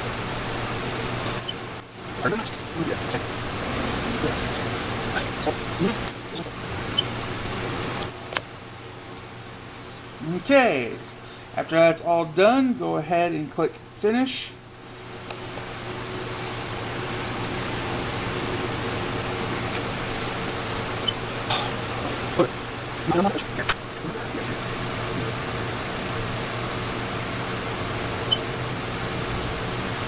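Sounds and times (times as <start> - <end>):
steady rushing noise: 0.0 - 8.1
laptop fan whooshing hiss: 0.0 - 30.0.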